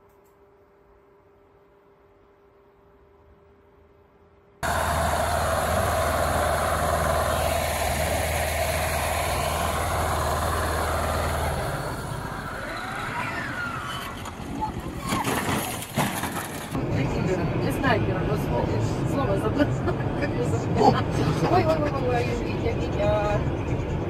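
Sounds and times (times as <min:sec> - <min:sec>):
vehicle engine running loudly: 0:04.6 - 0:15.0
voices: 0:04.6 - 0:15.4.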